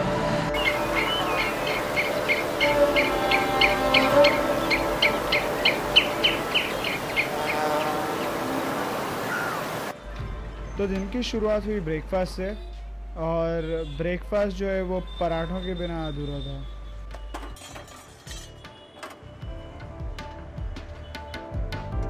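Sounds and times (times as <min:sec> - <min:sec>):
faint background music: 0:00.0 - 0:07.6, 0:09.9 - 0:22.0
small bird chirping: 0:00.6 - 0:09.8.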